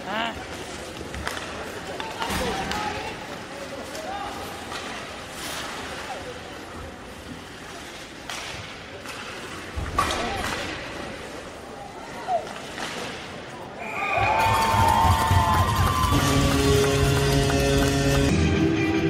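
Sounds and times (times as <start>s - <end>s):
crowd shouting and chattering: 0.0s - 19.0s
echoing rink noise: 0.0s - 19.0s.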